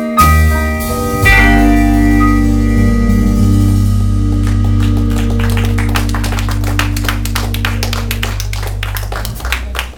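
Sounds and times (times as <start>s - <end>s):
rock band final chord: 0.2s - 9.9s
audience clapping: 3.6s - 9.9s.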